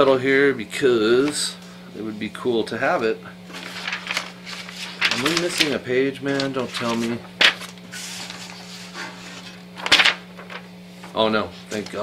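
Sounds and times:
low electrical hum: 0:00.0 - 0:12.0
paper rustling and shuffling: 0:01.1 - 0:01.6, 0:02.9 - 0:12.0.

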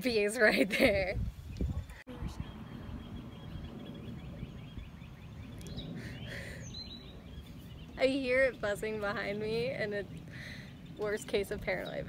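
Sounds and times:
bird calls rising and falling: 0:01.4 - 0:12.0
bird chirping: 0:01.4 - 0:12.0.

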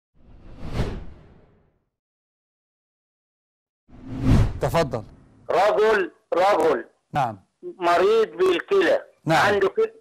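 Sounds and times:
whoosh with deep low undertone: 0:03.9 - 0:04.7.

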